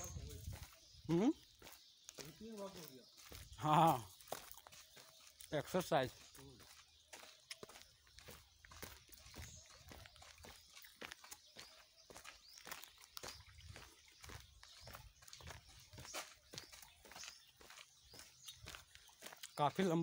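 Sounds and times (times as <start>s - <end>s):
footsteps on dry ground: 0.0s - 20.0s.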